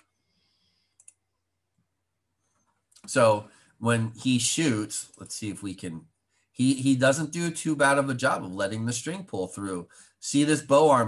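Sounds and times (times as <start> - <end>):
computer mouse clicks: 0.9 - 1.4.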